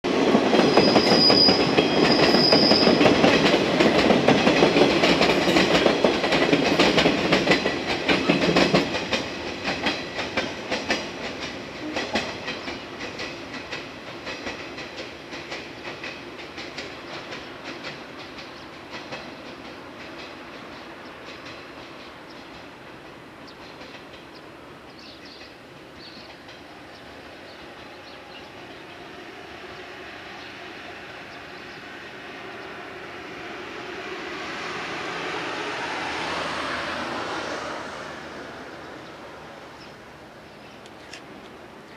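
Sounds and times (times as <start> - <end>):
train wheels clattering over rails: 0.1 - 28.9.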